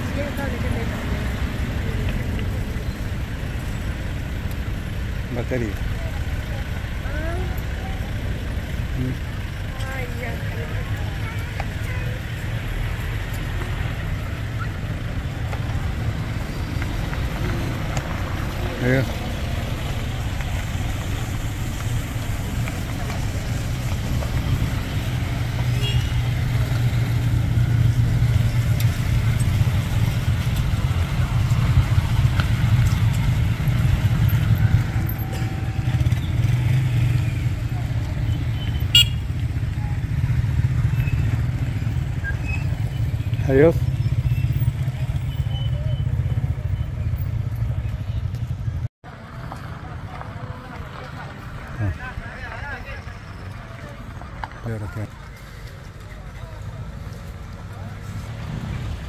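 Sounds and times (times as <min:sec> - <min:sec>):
voices calling out: 0:00.0 - 0:48.9
motorcycle engines running: 0:00.0 - 0:59.0.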